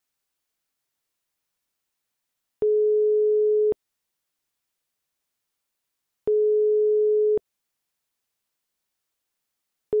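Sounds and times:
telephone ringback beep: 0:02.6 - 0:03.8, 0:06.3 - 0:07.4.

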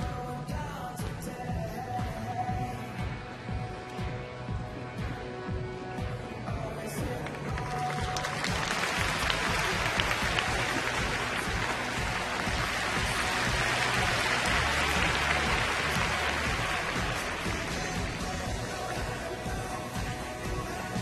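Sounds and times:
music: 0:00.0 - 0:21.0
audience applauding: 0:07.2 - 0:20.9.

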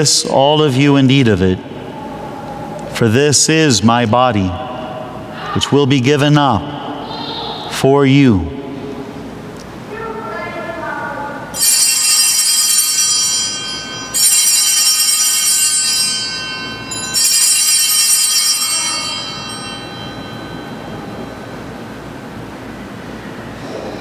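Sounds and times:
altar bells ringing: 0:11.5 - 0:22.5.

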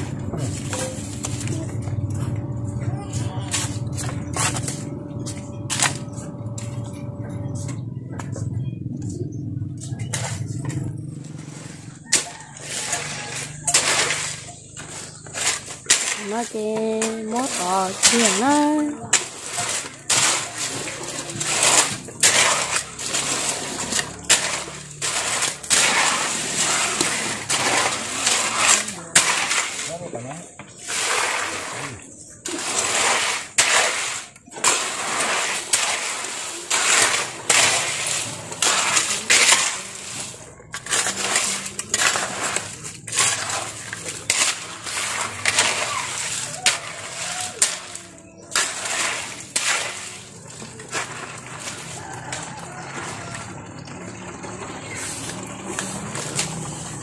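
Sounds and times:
hoe scraping cement and gravel: 0:00.0 - 0:57.0.

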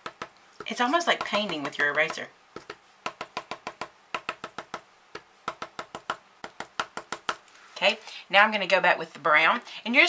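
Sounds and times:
pencil eraser tapping on paper: 0:00.0 - 0:07.4.

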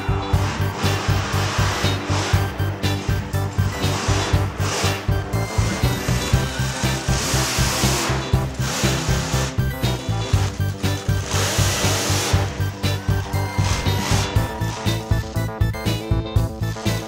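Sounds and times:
music with fast bass beat: 0:00.0 - 0:17.0.

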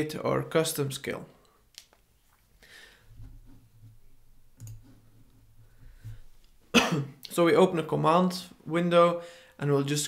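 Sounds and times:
man coughing: 0:06.7 - 0:07.2.

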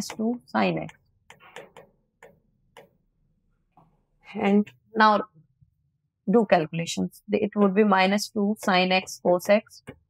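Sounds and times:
marker writing on whiteboard: 0:00.0 - 0:03.1, 0:08.6 - 0:10.0.

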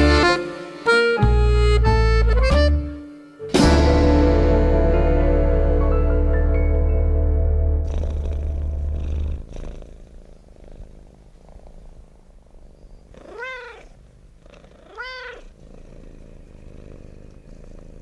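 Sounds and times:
music: 0:00.0 - 0:09.4
cat purring: 0:07.8 - 0:18.0
cat meowing: 0:13.1 - 0:14.0, 0:14.8 - 0:15.6.

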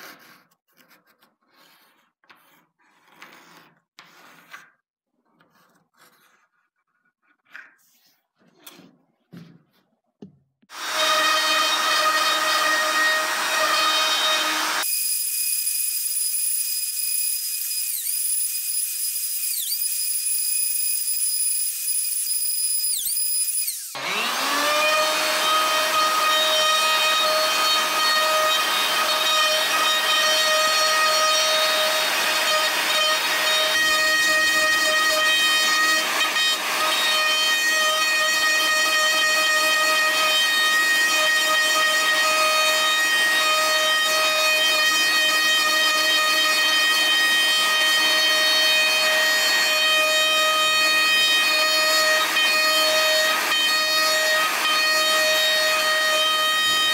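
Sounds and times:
router whining: 0:10.7 - 0:56.9.

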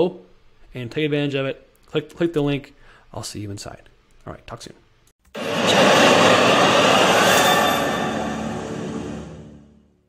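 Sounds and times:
loud rushing whoosh: 0:05.4 - 0:09.7.

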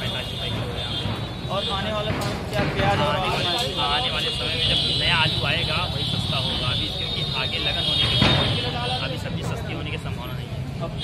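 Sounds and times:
steady background noise: 0:00.0 - 0:11.0
voices talking: 0:00.0 - 0:11.0.

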